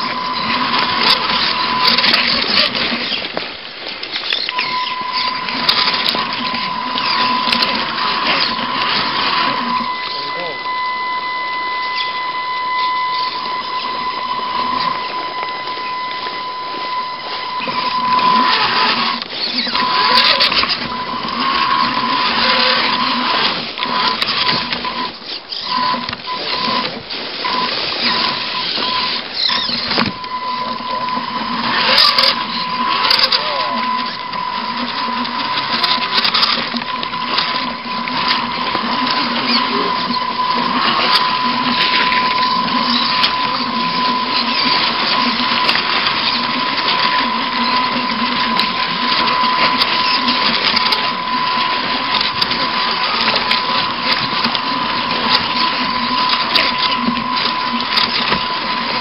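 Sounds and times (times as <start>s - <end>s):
chassis rattling and scraping on rock: 0.0s - 59.0s
electric motor whining: 0.0s - 59.0s.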